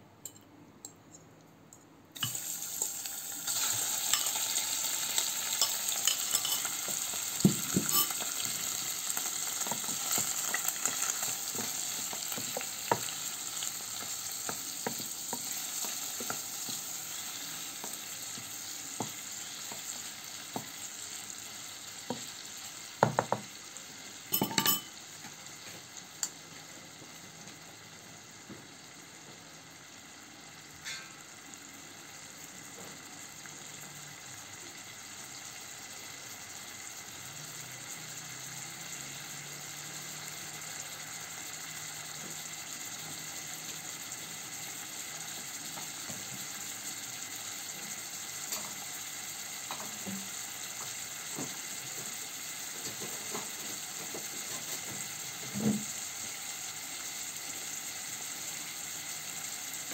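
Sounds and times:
meat sizzling in oil: 2.2s - 59.9s.

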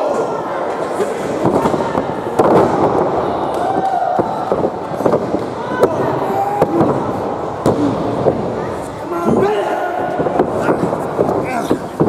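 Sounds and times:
crowd shouting and yelling: 0.0s - 12.0s.

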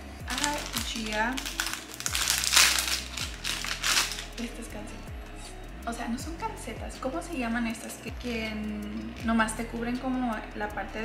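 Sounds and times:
plastic packaging crinkling: 0.3s - 4.6s.

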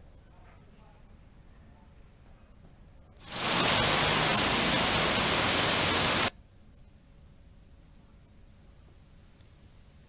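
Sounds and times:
heavy rain falling: 3.2s - 6.3s.

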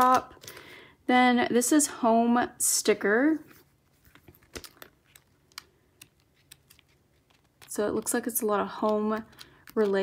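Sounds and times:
paper rustling: 3.4s - 8.1s.

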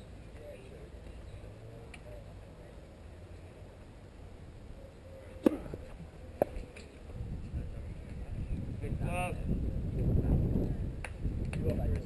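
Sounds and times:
wind rumble on microphone: 5.7s - 12.0s.

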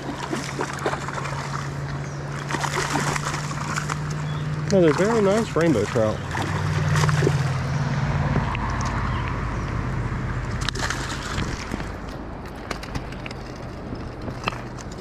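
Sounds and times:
fish splashing at water surface: 0.0s - 7.9s, 10.5s - 12.1s.

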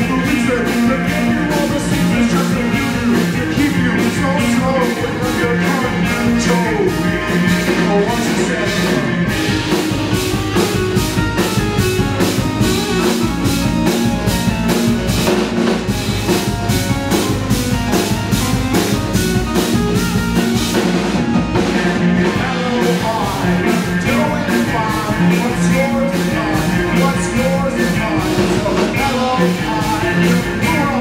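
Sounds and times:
bass guitar: 0.0s - 31.0s
drum kit beat: 0.0s - 31.0s
electric guitar: 0.0s - 31.0s
synthesizer: 0.0s - 31.0s.

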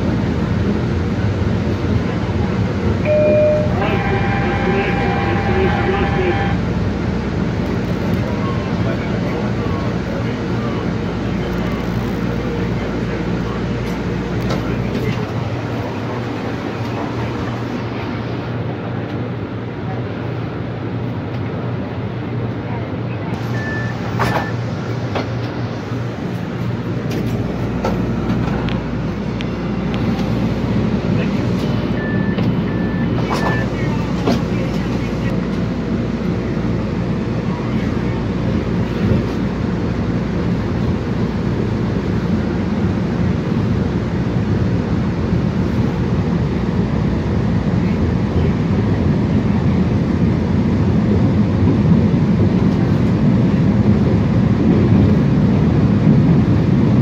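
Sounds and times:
train rumbling through tunnel: 0.0s - 57.0s
short beeps: 3.1s - 5.6s, 23.4s - 24.6s, 31.9s - 33.9s.

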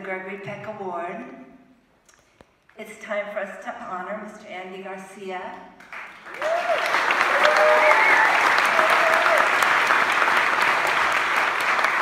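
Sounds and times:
audience applauding: 5.8s - 12.0s.

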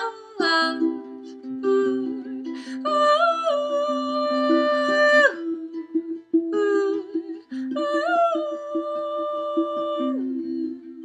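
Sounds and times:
strummed ukulele: 0.0s - 11.0s
woman singing ooh: 0.0s - 11.0s.

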